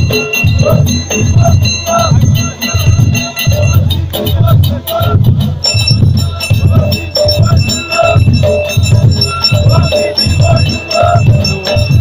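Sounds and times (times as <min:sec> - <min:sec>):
heavy drum rhythm: 0:00.0 - 0:12.0
men chanting in a group: 0:00.0 - 0:12.0.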